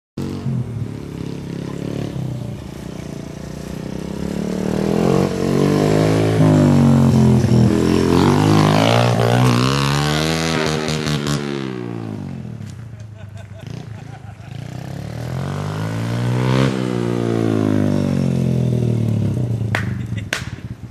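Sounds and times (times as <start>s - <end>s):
vehicle engine revving past: 0.2s - 12.7s, 13.6s - 19.7s.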